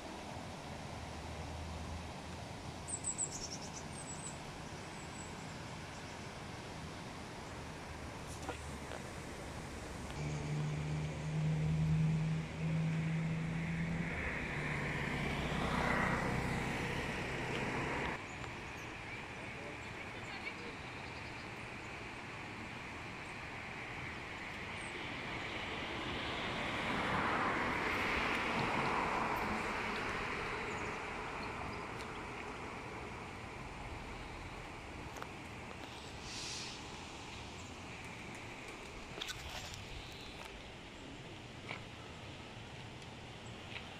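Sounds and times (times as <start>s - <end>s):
distant engine droning: 9.9s - 18.2s
short hiss: 35.9s - 37.5s
rushing noise: 35.9s - 39.2s.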